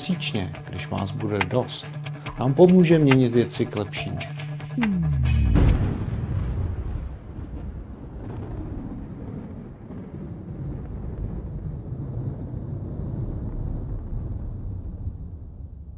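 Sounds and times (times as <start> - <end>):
low rumbling noise: 0.0 - 15.9.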